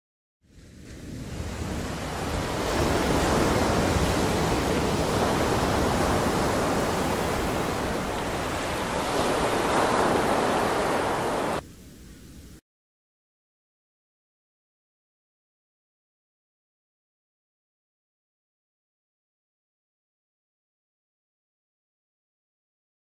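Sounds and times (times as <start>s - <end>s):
ocean surf on beach: 0.5s - 12.5s.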